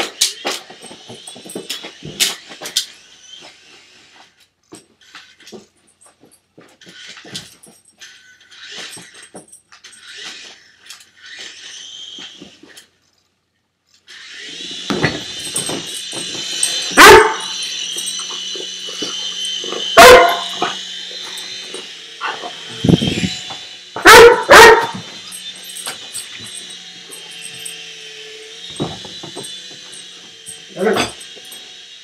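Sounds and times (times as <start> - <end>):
toy helicopter motor whine: 0.0 - 5.8, 6.6 - 32.0
puppy barking: 17.0 - 17.6, 20.0 - 20.8, 22.2 - 22.6, 24.0 - 25.0, 30.7 - 31.2.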